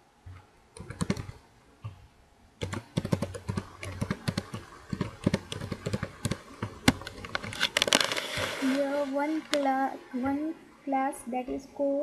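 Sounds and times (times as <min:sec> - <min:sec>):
typing on computer keyboard: 0:00.8 - 0:01.4, 0:02.6 - 0:08.0.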